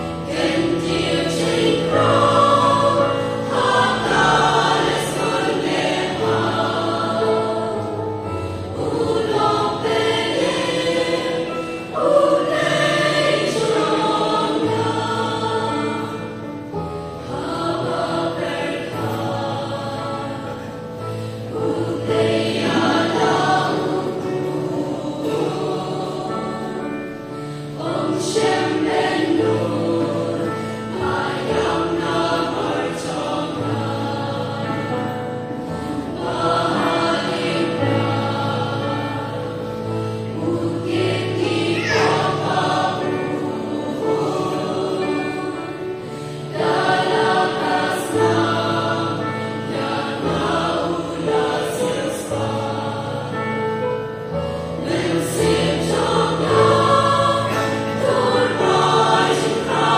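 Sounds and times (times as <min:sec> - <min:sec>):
choir singing in harmony: 0:00.0 - 0:59.9.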